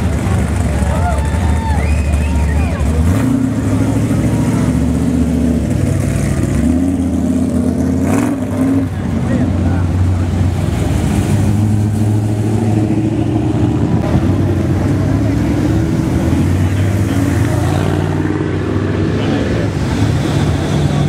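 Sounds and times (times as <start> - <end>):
hot rod engines cruising past: 0.0 - 21.0.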